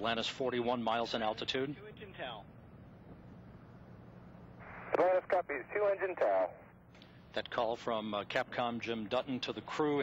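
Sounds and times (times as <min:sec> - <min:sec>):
faint radio hiss: 0:00.1 - 0:10.0.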